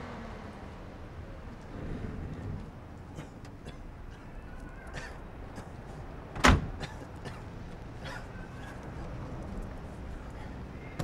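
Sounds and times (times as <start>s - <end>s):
car door slamming: 6.3s - 6.8s.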